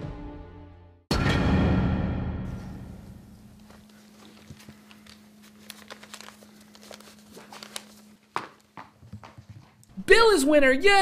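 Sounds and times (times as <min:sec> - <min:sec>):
music hit: 0:01.1 - 0:03.6.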